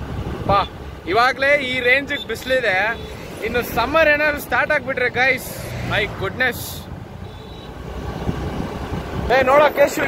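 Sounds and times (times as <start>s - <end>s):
wind noise: 0.0s - 0.8s, 7.9s - 10.0s.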